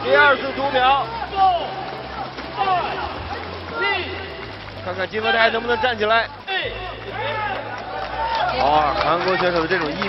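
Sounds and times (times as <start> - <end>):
arena background noise: 0.0 - 10.0.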